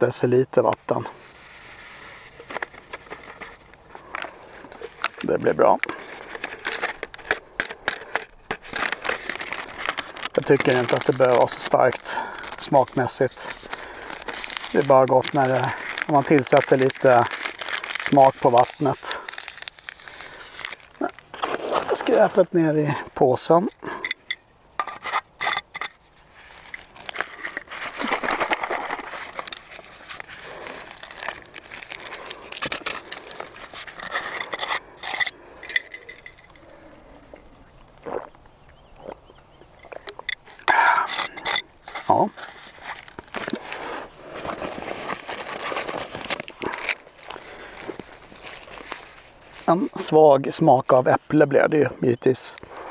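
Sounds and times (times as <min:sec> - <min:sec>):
plastic packaging crinkling: 0:00.9 - 0:23.2, 0:25.0 - 0:37.3, 0:39.8 - 0:51.0
sharp clicks and scrapes: 0:01.5 - 0:22.4, 0:23.7 - 0:36.7, 0:39.8 - 0:43.8.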